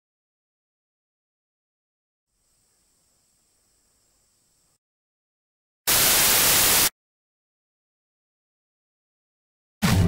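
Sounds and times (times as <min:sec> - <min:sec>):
television static hiss: 0:05.9 - 0:06.9.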